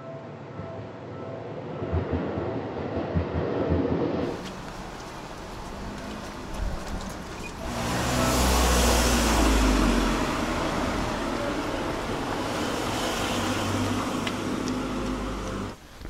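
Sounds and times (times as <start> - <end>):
car driving by: 3.8 - 15.8.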